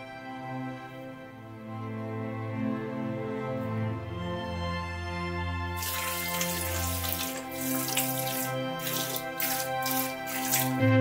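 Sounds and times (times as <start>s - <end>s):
background music: 0.0s - 11.0s
water running and splashing: 5.8s - 10.9s.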